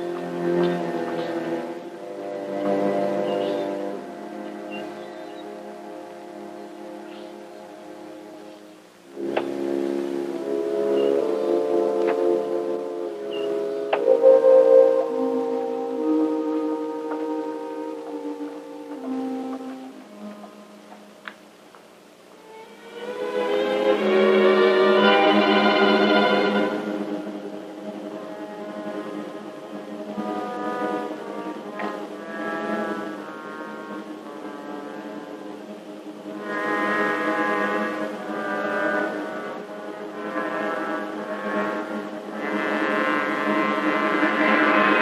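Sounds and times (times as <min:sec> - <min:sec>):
sustained brass chords: 0:00.0 - 0:21.6, 0:22.4 - 0:45.0
suspenseful orchestral music: 0:00.0 - 0:45.0.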